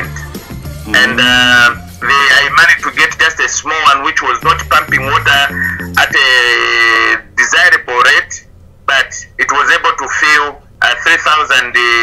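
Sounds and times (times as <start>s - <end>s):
person singing: 0.0s - 2.1s
background music: 0.0s - 7.5s.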